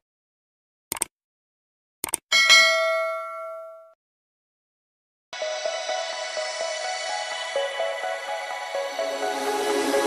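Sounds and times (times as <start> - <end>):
notification bell ding: 2.3 - 4.0.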